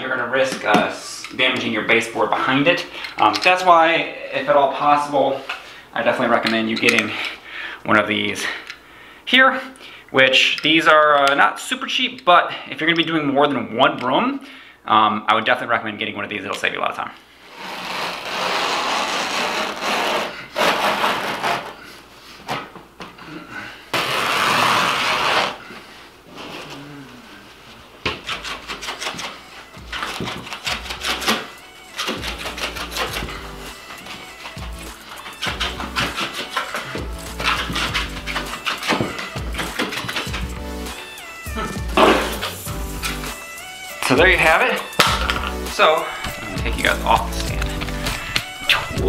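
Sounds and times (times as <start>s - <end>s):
music with steady beat: 29.4s - 49.0s.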